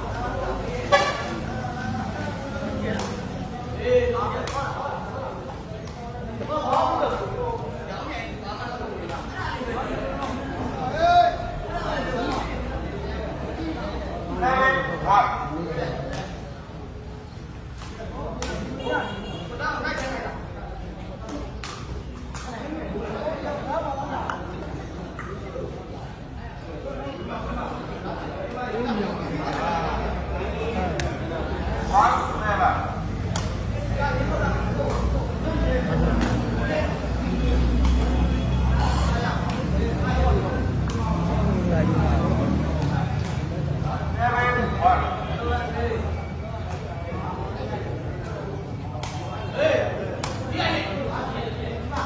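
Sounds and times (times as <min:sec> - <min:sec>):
people shouting and chattering: 0:00.0 - 0:52.0
spectators' voices: 0:00.0 - 0:52.0.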